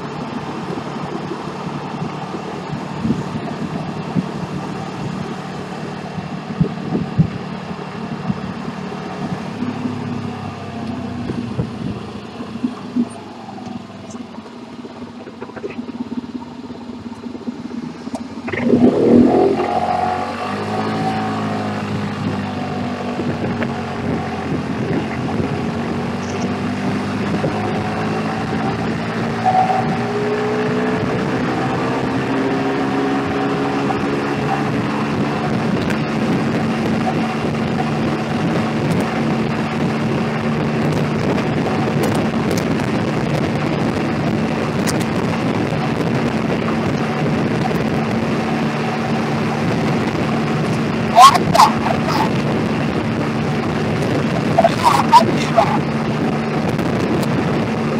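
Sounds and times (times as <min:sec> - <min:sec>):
wind and road noise: 0:00.0 - 0:57.9.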